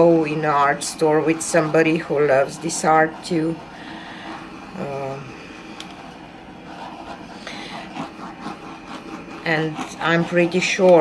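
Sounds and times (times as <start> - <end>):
butane torch hissing: 0.0 - 11.0.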